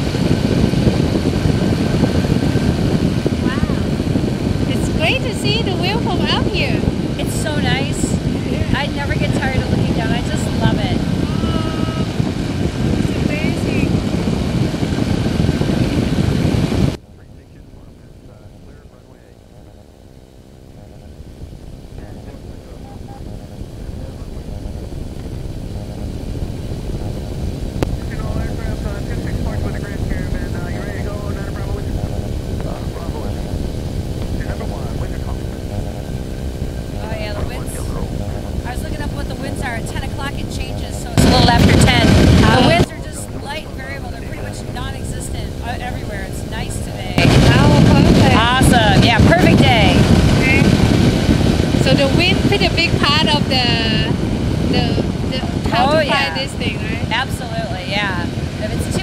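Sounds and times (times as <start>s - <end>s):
air rushing past microphone: 0.0s - 59.0s
ultralight engine and propeller drone: 0.0s - 59.0s.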